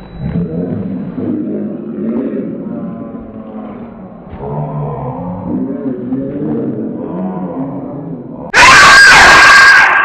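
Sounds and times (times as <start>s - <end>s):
loud high-pitched scream: 8.5s - 10.0s.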